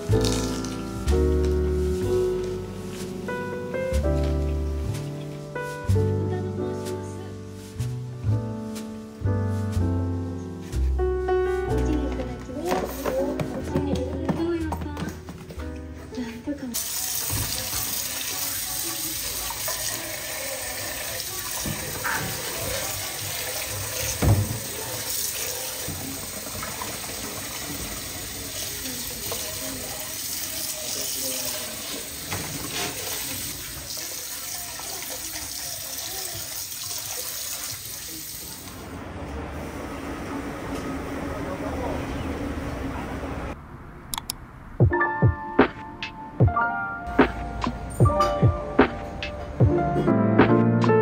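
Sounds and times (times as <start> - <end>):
music from tablet: 44.8 - 51.0.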